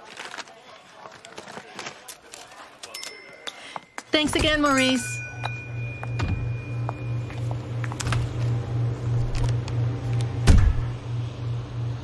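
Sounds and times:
refrigerator electric hum: 4.2s - 12.0s
heavy door thump: 10.4s - 11.0s.

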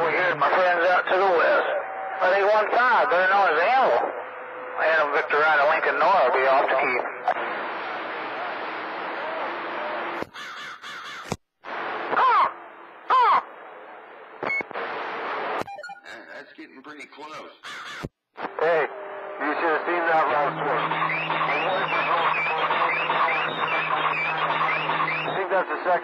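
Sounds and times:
choppy radio signal: 0.0s - 10.3s, 11.6s - 26.0s
radio static hiss: 0.0s - 10.3s, 11.7s - 17.6s, 18.4s - 26.0s
swooping sound effect calls: 20.7s - 25.4s.

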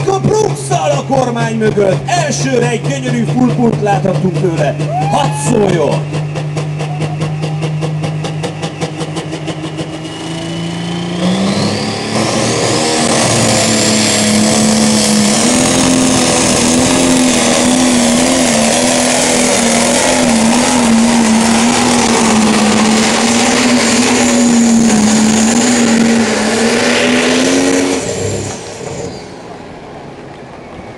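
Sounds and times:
diesel engine revving: 0.0s - 30.2s
high turbo whine: 0.0s - 30.9s.

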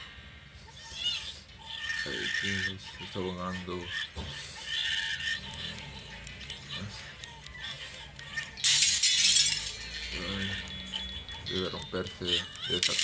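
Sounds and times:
background music: 5.2s - 13.0s
glass and crockery shattering: 8.6s - 10.0s.

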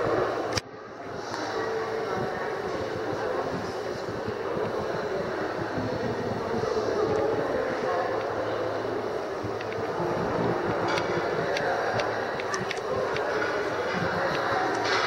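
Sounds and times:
faint distant voices: 0.0s - 15.0s.

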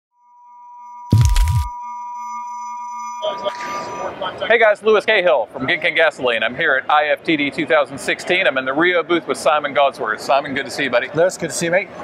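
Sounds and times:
loud low thump: 1.1s - 1.7s
crowd chatter in a hall: 3.6s - 12.0s.

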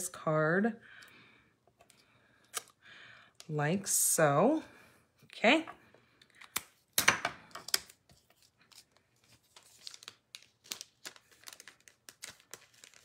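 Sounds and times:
paper rustling and crinkling: 7.8s - 13.0s.

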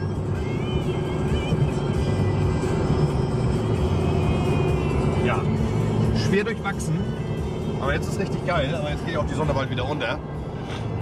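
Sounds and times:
car road and engine rumble: 0.0s - 11.0s
music playing: 0.0s - 11.0s.

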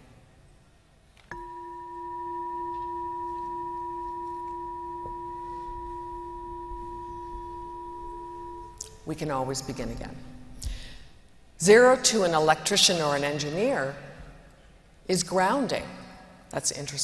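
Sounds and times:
singing bowl ringing: 1.3s - 10.6s.

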